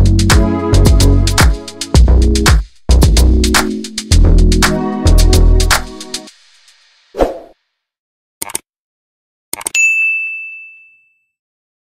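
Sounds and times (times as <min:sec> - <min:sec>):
notification bell ding: 0:09.8 - 0:11.3.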